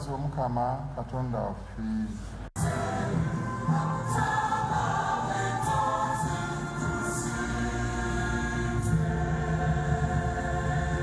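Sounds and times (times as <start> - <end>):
choir singing a hymn: 2.6 - 11.0.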